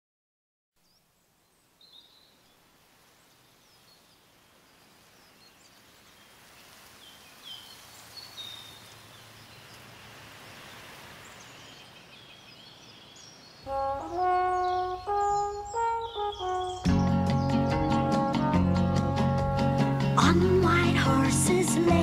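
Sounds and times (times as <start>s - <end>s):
small birds chirping: 0.8s - 18.5s
outdoor background hiss: 0.8s - 22.0s.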